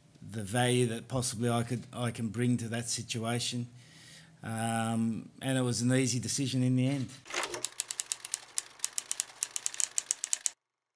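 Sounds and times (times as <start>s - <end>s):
rapid sharp clicks: 7.4s - 10.6s.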